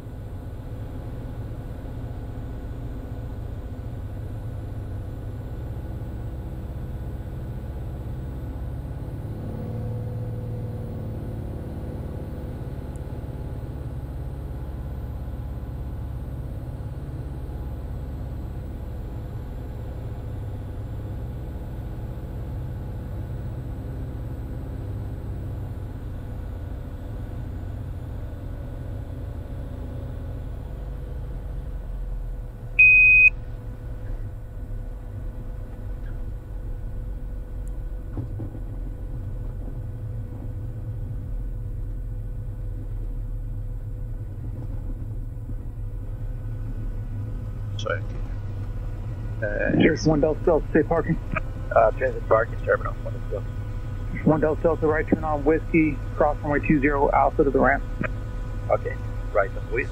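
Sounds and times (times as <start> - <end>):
aircraft engine and propeller drone: 0.0 - 59.9
short loud electronic beep: 32.8 - 33.4.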